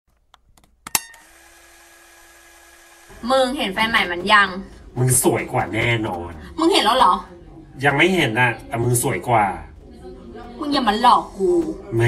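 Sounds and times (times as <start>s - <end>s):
sharp loud click: 0.8s - 1.2s.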